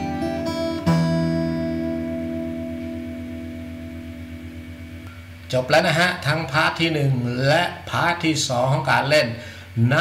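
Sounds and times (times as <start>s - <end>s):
acoustic guitar notes ringing: 0.0s - 8.5s.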